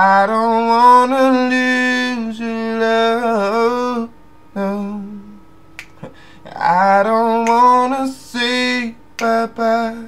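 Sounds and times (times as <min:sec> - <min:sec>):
man singing a wordless note: 0:00.0 - 0:10.0
finger snap: 0:05.8 - 0:06.2, 0:07.4 - 0:07.9, 0:09.2 - 0:09.5.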